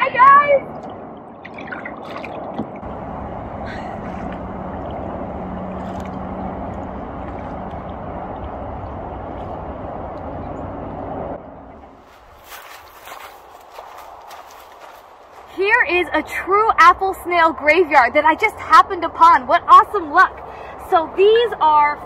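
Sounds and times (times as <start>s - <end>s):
kayak paddling across water: 0.6s - 15.6s
footsteps through dry leaves: 11.9s - 15.6s.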